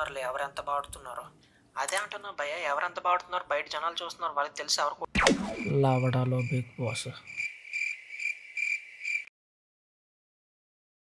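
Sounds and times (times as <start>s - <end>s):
cricket chirping: 5.7s - 9.3s.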